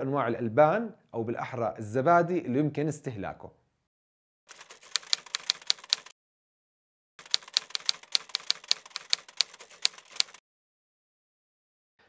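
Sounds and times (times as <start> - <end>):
typewriter key clacks: 4.5 - 6.1, 7.2 - 10.4.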